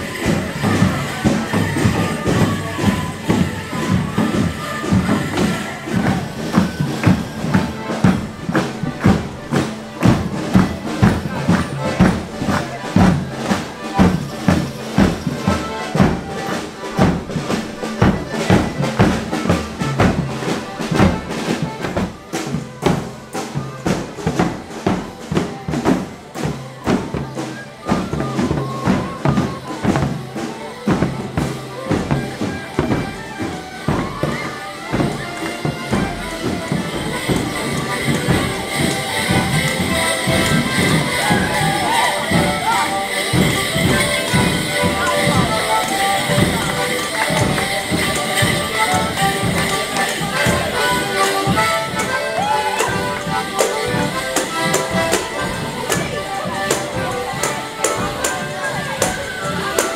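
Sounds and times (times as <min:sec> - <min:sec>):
accordions playing folk tune: 0:00.0 - 0:59.9
drum beat: 0:00.0 - 0:59.9.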